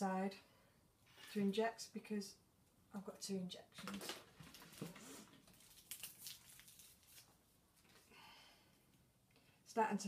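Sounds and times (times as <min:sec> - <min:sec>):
faint rustling of packets: 0:03.7 - 0:08.2.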